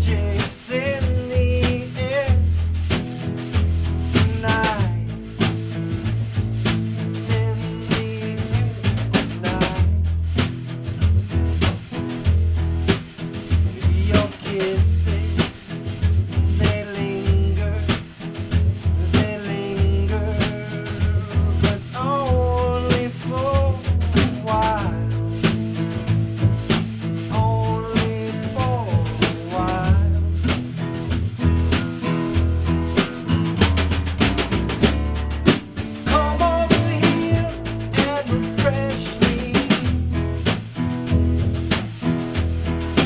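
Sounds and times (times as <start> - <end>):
man singing: 0.0 - 3.0, 4.1 - 6.0, 6.7 - 10.2, 13.6 - 26.0, 27.2 - 31.0, 35.7 - 40.5
plucked double bass: 0.0 - 43.0
strummed acoustic guitar: 0.0 - 43.0.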